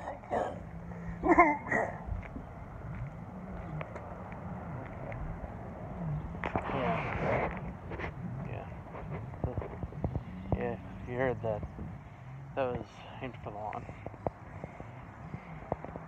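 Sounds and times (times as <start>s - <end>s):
distant engine humming: 0.0s - 16.0s
rush of wind noise: 0.6s - 12.1s.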